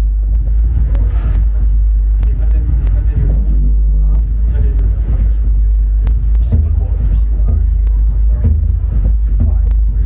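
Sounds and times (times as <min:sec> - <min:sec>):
people's voices: 0:00.0 - 0:10.0
synthesizer bass drone: 0:00.0 - 0:10.0.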